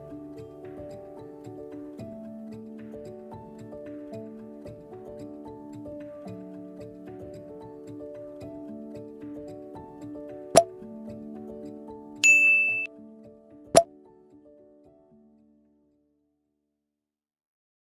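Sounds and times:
soft plucked background music: 0:00.0 - 0:15.9
mouse-click sound effects: 0:12.2 - 0:12.9
notification bell ding: 0:12.2 - 0:12.9.

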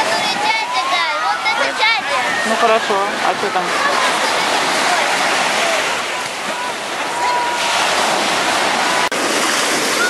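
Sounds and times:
surf breaking on beach: 0:00.0 - 0:10.0.

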